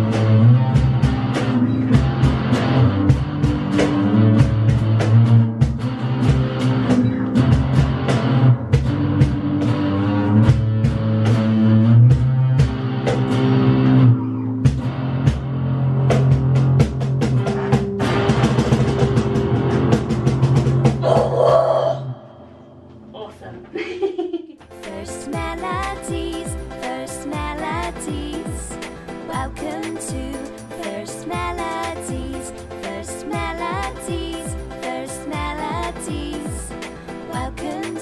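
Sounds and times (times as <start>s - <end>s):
drum kit beat: 0.0s - 13.7s, 14.6s - 21.5s, 24.5s - 38.0s
electric guitar: 0.0s - 23.1s, 24.6s - 38.0s.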